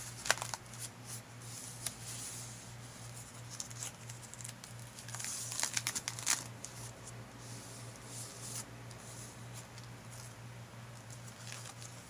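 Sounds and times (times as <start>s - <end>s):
stiff paper pages crinkling: 0.0s - 2.2s, 3.0s - 7.0s, 8.3s - 12.0s.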